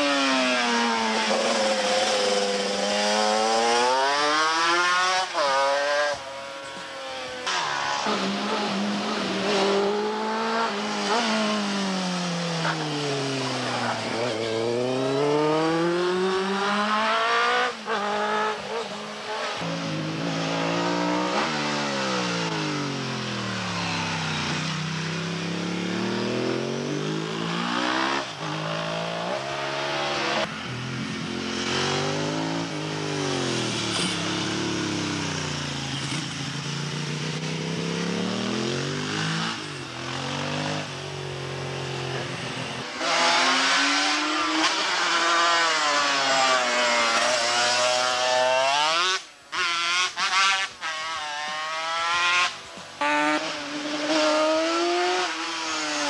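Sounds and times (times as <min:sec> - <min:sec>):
racing motorcycle engines: 0:00.0 - 0:56.0.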